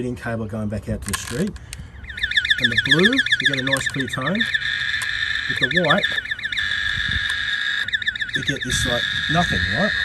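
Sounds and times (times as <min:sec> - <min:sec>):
steady high-pitched whine: 0:01.8 - 0:10.0
warbling trace tone: 0:02.0 - 0:10.0.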